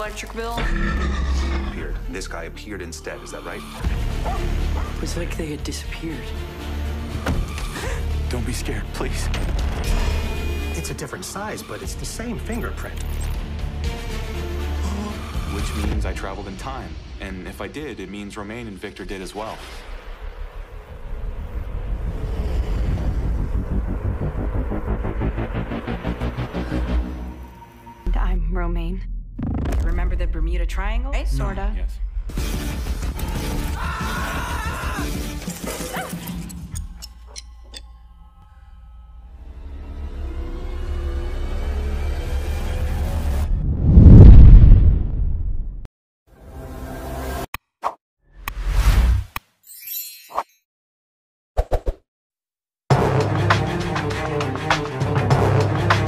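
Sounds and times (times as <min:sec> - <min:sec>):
deep low rumble: 0:20.0 - 0:26.8, 0:43.1 - 0:45.9.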